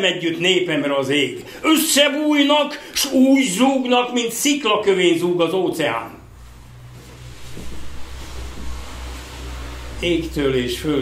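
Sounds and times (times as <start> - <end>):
recording hiss: 0.0 - 11.0
low hum: 6.2 - 11.0.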